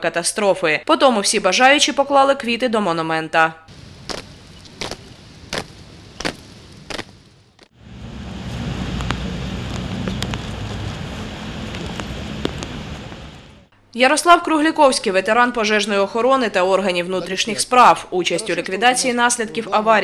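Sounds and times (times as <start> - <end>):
outdoor low rumble: 3.7 - 13.7
marching footsteps on paving: 3.8 - 7.8.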